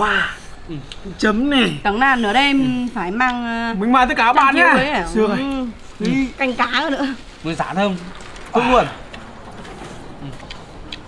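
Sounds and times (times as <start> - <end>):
low steady background hiss: 0.0 - 11.0
soft mouth clicks: 0.8 - 1.1
man chewing: 8.1 - 11.0.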